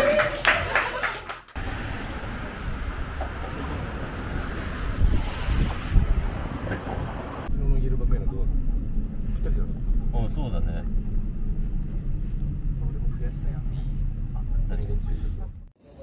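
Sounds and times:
traffic noise: 0.0 - 16.0
wind buffeting microphone: 2.4 - 7.5.

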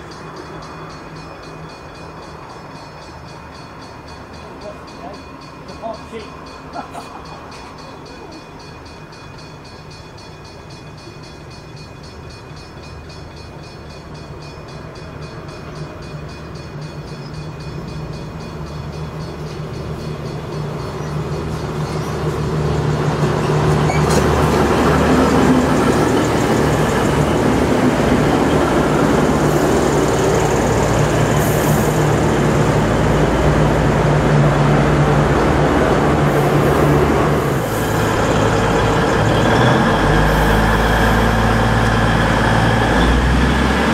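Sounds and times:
diesel train passing: 0.0 - 43.9.

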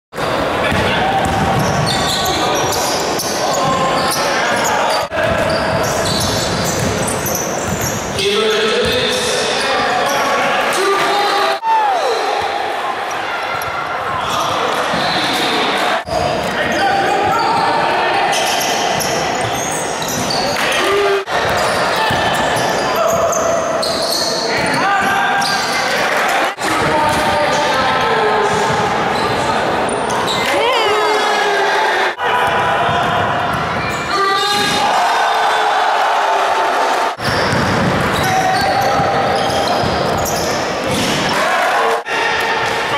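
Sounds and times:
sneakers squeaking: 0.2 - 10.4, 12.0 - 31.2, 32.4 - 34.8, 37.2 - 41.4
players and spectators shouting: 0.3 - 42.9
basketball bouncing on wooden court: 0.7 - 2.3, 4.6 - 8.1, 21.3 - 23.4, 32.4 - 34.0, 37.2 - 40.4.

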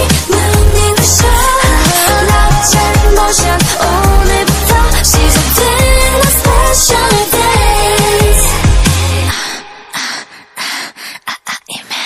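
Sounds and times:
pop track beat and bass: 0.0 - 9.7.

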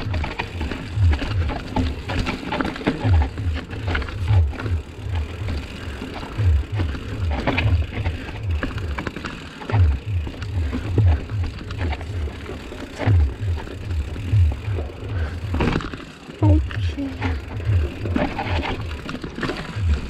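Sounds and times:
low rhythmic thumping: 0.0 - 9.0, 9.7 - 15.8, 16.4 - 20.0
mountain bike rattling and clicking: 0.0 - 20.0.

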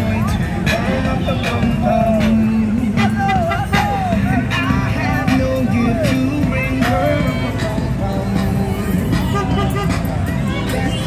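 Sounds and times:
crowd voices: 0.0 - 11.0
loud music: 0.0 - 11.0
low engine rumble: 0.0 - 11.0.

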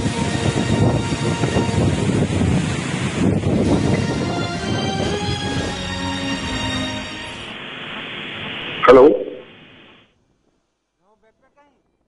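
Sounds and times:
strong wind on microphone: 0.0 - 6.8.

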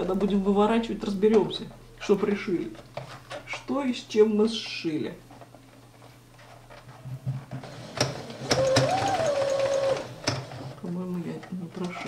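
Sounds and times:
sewing machine stitching: 7.6 - 10.8.

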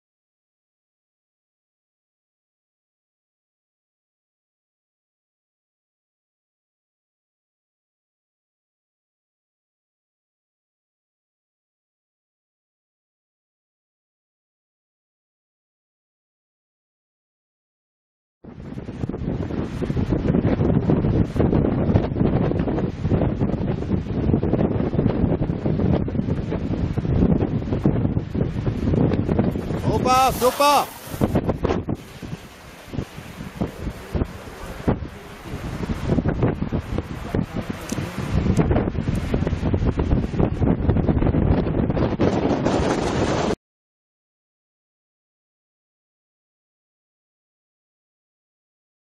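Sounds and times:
wind buffeting microphone: 18.4 - 43.6.

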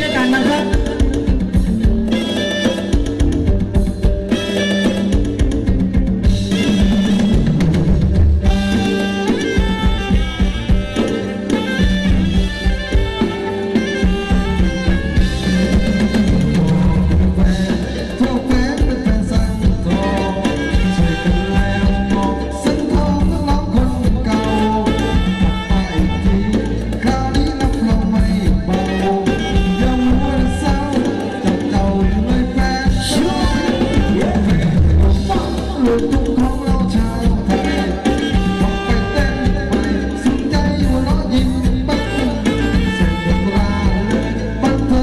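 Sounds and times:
bass drum and snare strokes: 0.0 - 45.0
bass line: 0.0 - 45.0
live band playing dance music: 0.0 - 45.0.

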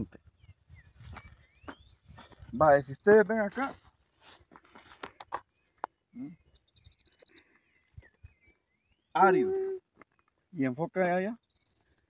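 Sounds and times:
high bird trill: 11.4 - 12.0.

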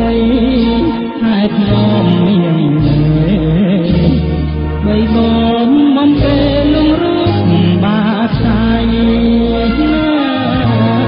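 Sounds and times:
pop song with person singing: 0.0 - 11.0
steady bass accompaniment: 0.0 - 11.0.

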